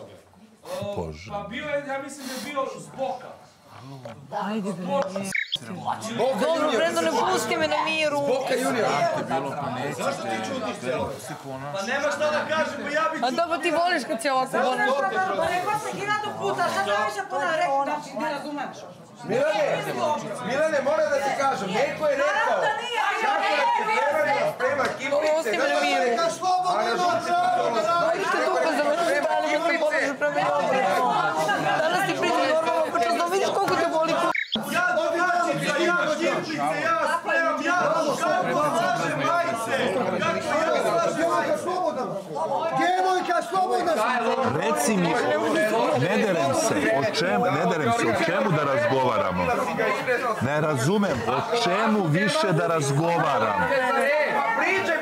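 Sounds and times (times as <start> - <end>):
people talking over one another: 4.2 - 55.0.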